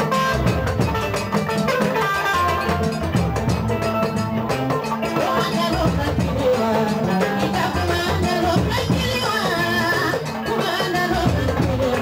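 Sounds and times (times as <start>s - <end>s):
steady drumming: 0.0s - 12.0s.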